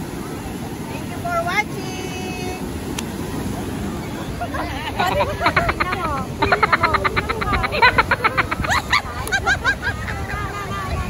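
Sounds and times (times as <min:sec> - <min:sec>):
people's voices: 0:00.0 - 0:11.0
wind and surf rumble: 0:00.0 - 0:11.0.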